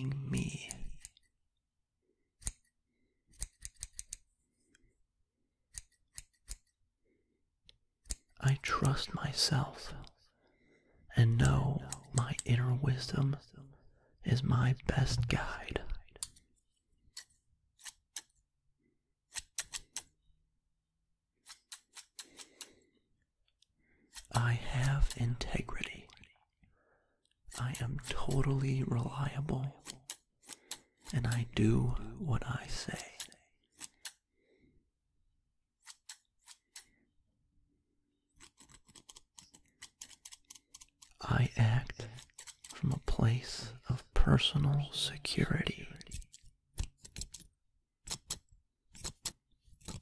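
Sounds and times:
scissors snipping: 0:02.4 - 0:04.3, 0:05.7 - 0:06.8, 0:08.0 - 0:08.4, 0:19.3 - 0:20.1, 0:21.4 - 0:22.7, 0:33.2 - 0:34.2, 0:35.8 - 0:36.9, 0:38.4 - 0:41.2, 0:42.2 - 0:42.8, 0:46.1 - 0:50.0.

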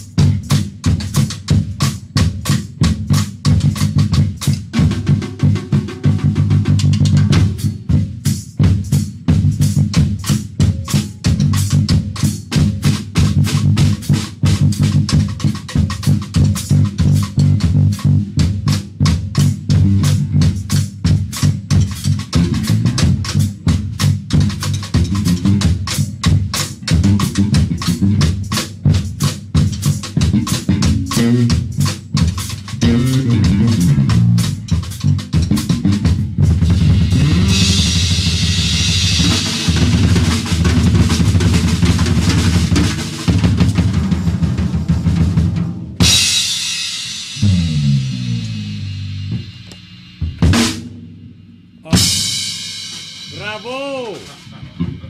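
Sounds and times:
electric bass guitar: 0:00.0 - 0:07.8, 0:09.2 - 0:41.8, 0:47.4 - 0:50.7, 0:51.8 - 0:52.5
fast busy drumming: 0:00.0 - 0:51.0, 0:51.8 - 0:55.0.

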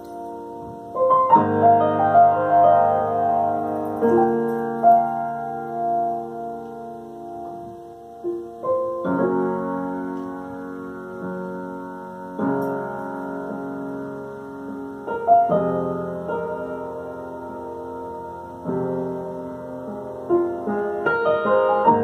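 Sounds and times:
slow piano chords ringing: 0:00.0 - 0:22.0.

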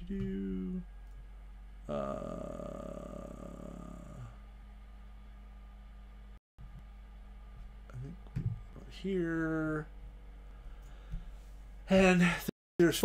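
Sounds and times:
man's hesitant voice: 0:00.0 - 0:00.9, 0:01.8 - 0:04.4
low electrical hum: 0:00.0 - 0:13.0.

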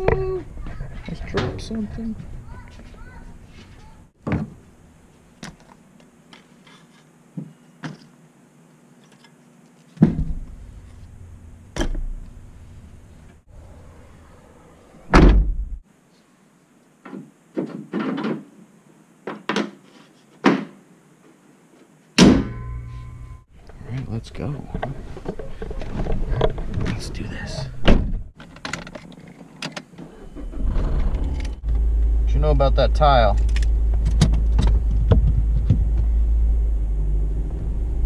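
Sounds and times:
car hatch slamming shut: 0:15.1 - 0:15.6.

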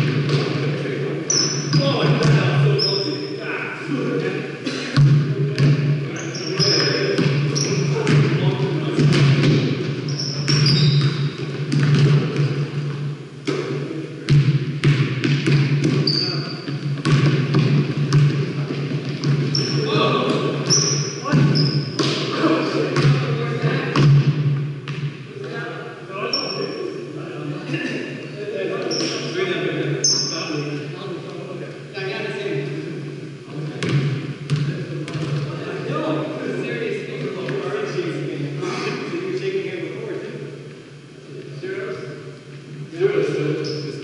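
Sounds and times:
steady low hum: 0:00.0 - 0:44.0
sneakers squeaking: 0:01.3 - 0:03.4, 0:05.0 - 0:08.4, 0:09.0 - 0:22.4, 0:26.2 - 0:27.0, 0:28.1 - 0:29.4, 0:30.0 - 0:30.8, 0:43.6 - 0:44.0
basketball bouncing on hardwood floor: 0:10.4 - 0:12.5, 0:14.3 - 0:19.8.

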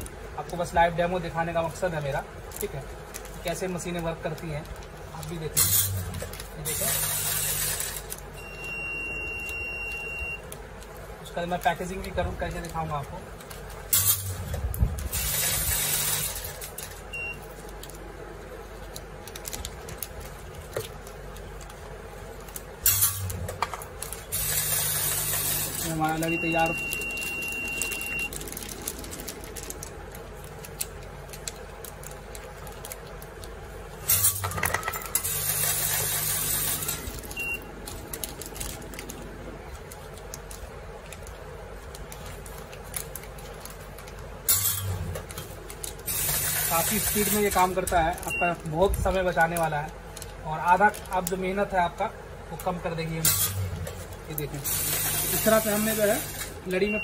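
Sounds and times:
granules pouring with hiss: 0:00.0 - 0:08.6, 0:10.4 - 0:57.0
machine buzzer high beep: 0:24.8 - 0:28.3.

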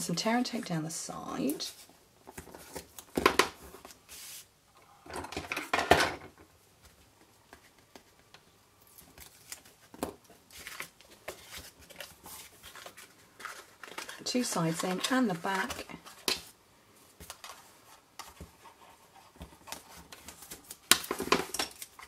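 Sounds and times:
cardstock tapping and rustling: 0:18.2 - 0:22.0.

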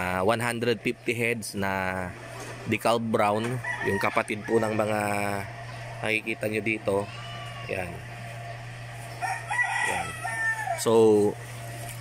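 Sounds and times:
steady low hum: 0:00.0 - 0:12.0
chicken crowing: 0:03.4 - 0:05.5, 0:06.8 - 0:08.1, 0:09.0 - 0:11.3.

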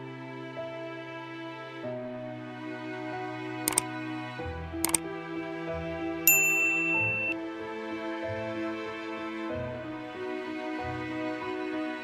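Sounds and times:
soft background music: 0:00.0 - 0:12.0
notification bell ding: 0:06.3 - 0:07.4.

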